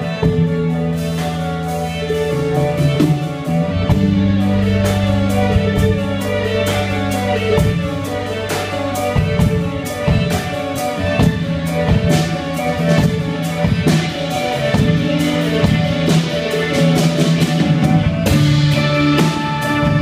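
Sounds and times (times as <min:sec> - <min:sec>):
bowed cello: 0:00.0 - 0:20.0
drum kit keeping a steady beat: 0:00.0 - 0:20.0
electric guitar: 0:00.0 - 0:20.0
violin: 0:00.0 - 0:20.0.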